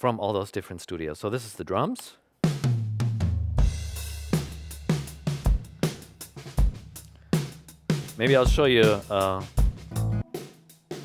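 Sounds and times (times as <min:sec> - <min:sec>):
drum kit groove: 0:02.4 - 0:11.0.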